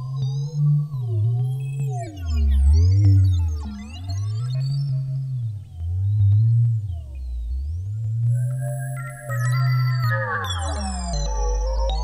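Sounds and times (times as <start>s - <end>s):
scattered clicks: 5.7s - 12.0s.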